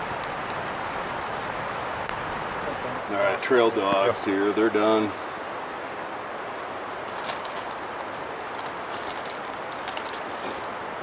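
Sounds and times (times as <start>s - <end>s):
campfire crackling and popping: 0.0s - 11.0s.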